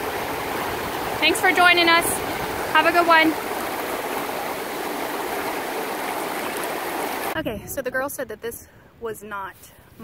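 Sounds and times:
river rushing over boulders: 0:00.0 - 0:07.4.

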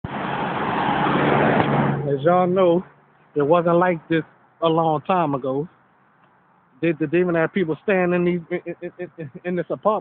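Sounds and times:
road noise: 0:00.0 - 0:10.0
vehicle engine hum: 0:00.0 - 0:10.0.

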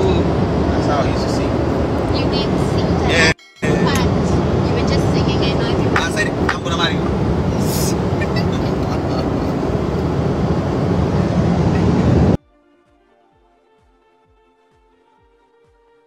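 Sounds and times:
aircraft cabin engine noise: 0:00.0 - 0:12.4
voices: 0:00.0 - 0:12.4
faint music with soft beat: 0:12.4 - 0:16.0.

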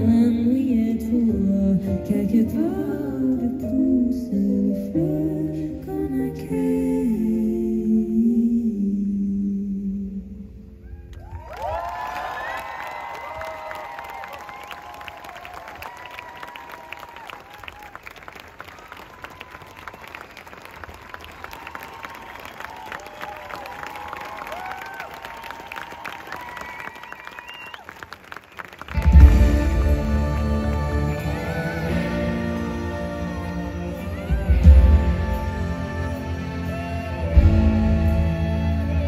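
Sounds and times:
crowd cheering and whooping: 0:10.8 - 0:29.4
crowd clapping: 0:11.1 - 0:31.4.

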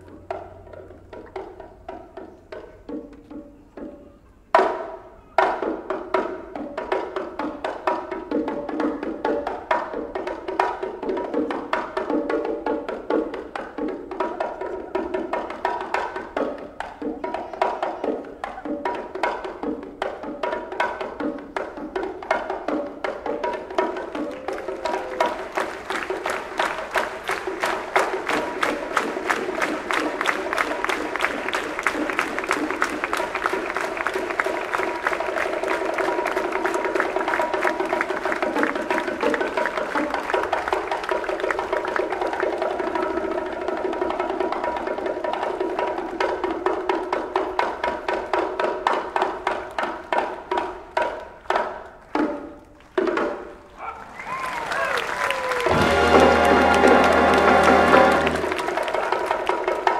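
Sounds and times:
bongos: 0:00.0 - 0:54.3, 0:55.4 - 0:59.9
hand-clapping: 0:23.8 - 0:42.9, 0:49.4 - 0:59.9
wind band playing: 0:55.1 - 0:59.0
held notes: 0:55.6 - 0:58.8.

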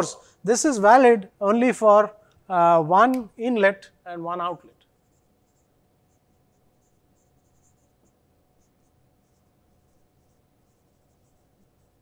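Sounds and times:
marker squeaking on whiteboard: 0:04.7 - 0:12.0.

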